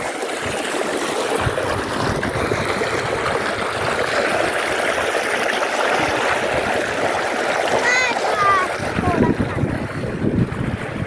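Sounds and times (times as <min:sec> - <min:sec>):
wind buffeting microphone: 0:01.4 - 0:05.4, 0:07.8 - 0:11.0.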